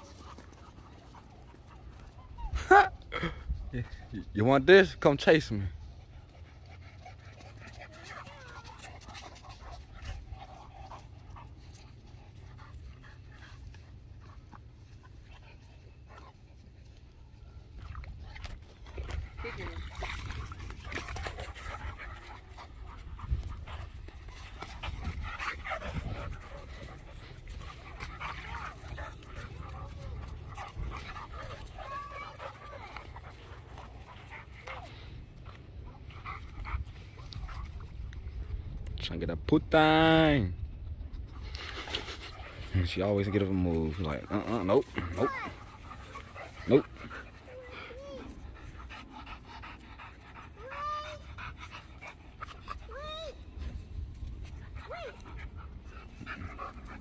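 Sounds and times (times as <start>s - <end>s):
dogs panting: 0.0s - 38.9s, 40.5s - 57.0s.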